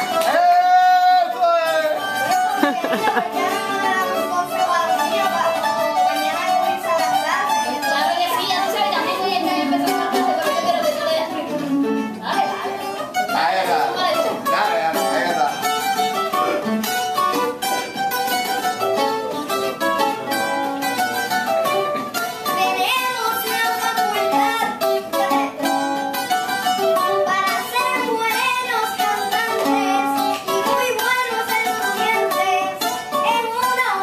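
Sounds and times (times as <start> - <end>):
acoustic guitar picking: 0.0 - 34.0.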